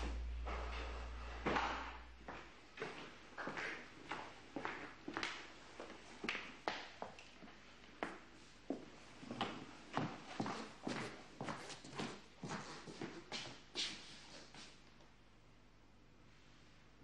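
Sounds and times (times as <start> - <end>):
footsteps on wooden floor: 0.0 - 5.2.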